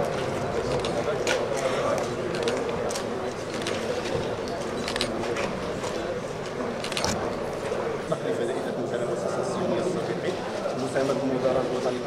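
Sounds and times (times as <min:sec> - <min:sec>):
murmur of many people talking: 0:00.0 - 0:12.0.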